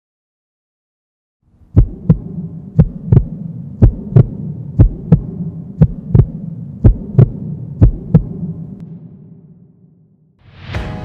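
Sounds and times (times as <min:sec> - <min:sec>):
steady low hum: 0:01.5 - 0:10.3
heartbeat thumps: 0:01.7 - 0:08.9.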